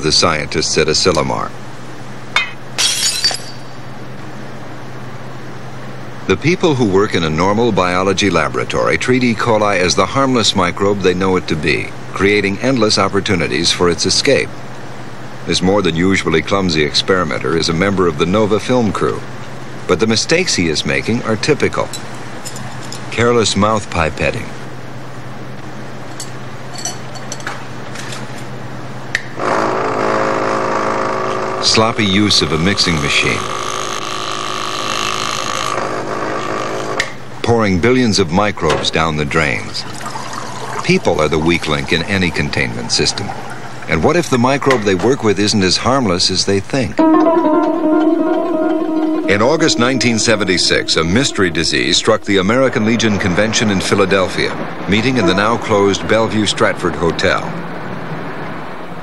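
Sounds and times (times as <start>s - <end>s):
low steady hum: 0.0s - 29.2s, 37.2s - 57.8s
glassware clinking: 2.4s - 3.8s, 26.2s - 27.6s
glass clattering: 2.4s - 3.9s, 26.2s - 27.6s.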